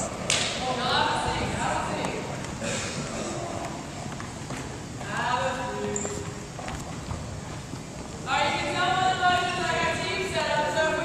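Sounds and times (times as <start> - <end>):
footsteps on hardwood floor: 5.8 - 8.2.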